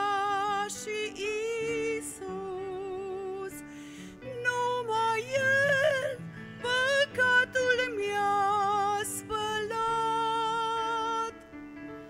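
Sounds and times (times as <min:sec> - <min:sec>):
woman singing with vibrato: 0:00.0 - 0:11.4.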